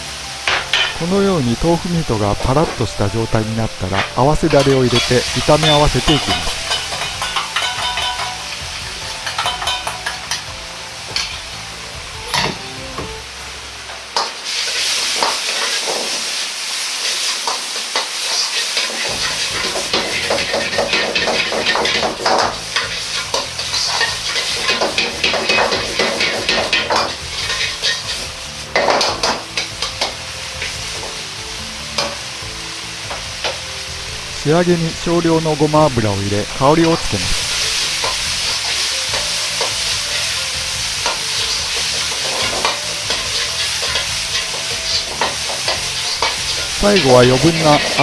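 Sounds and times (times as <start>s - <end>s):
food sizzling in a wok: 0.0s - 48.0s
metal ladle scraping wok: 17.0s - 31.2s, 37.2s - 39.8s, 41.0s - 48.0s.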